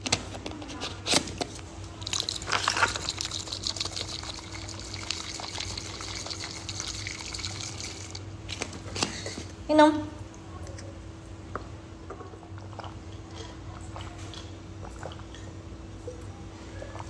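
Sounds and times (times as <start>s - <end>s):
drink sloshing in shaken bottle: 2.0s - 9.1s.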